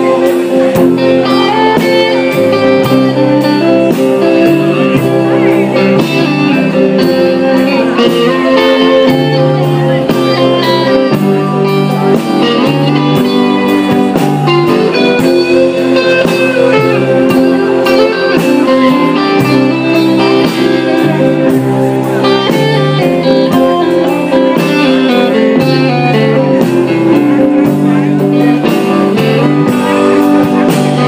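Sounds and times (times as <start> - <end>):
drum kit steady beat: 0.0 - 31.0
electric guitar: 0.0 - 31.0
upright bass: 0.0 - 31.0.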